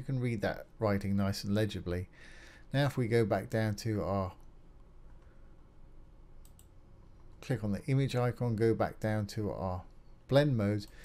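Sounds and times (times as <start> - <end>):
faint low room hum: 0.0 - 11.0
computer mouse clicks: 6.4 - 7.4.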